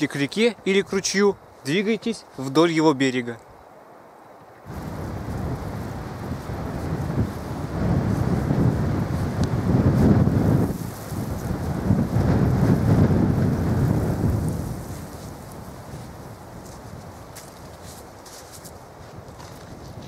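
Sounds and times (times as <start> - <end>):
wind buffeting microphone: 4.6 - 20.0.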